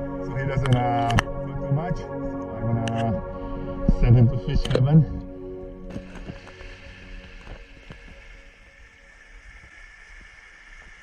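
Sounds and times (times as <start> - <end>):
background music: 0.0 - 9.3.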